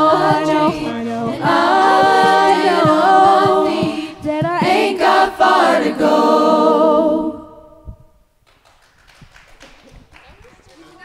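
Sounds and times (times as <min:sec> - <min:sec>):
a cappella choir chord: 0:00.0 - 0:07.9.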